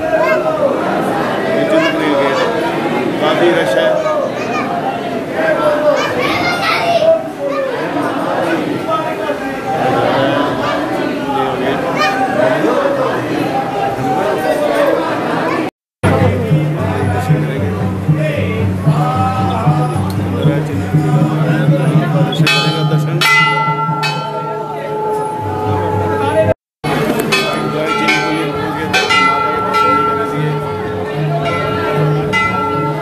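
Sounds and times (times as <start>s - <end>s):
crowd talking: 0.0s - 33.0s
brass bell ringing: 20.7s - 33.0s.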